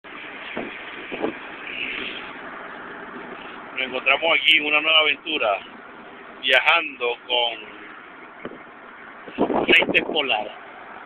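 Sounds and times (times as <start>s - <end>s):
road and engine noise in cabin: 0.0s - 11.0s
man speaking: 3.8s - 5.7s, 6.4s - 7.8s, 9.7s - 10.6s.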